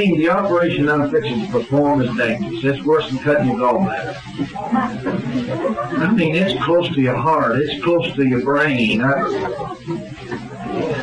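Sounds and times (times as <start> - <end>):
man preaching: 0.0 - 4.1, 6.0 - 9.3.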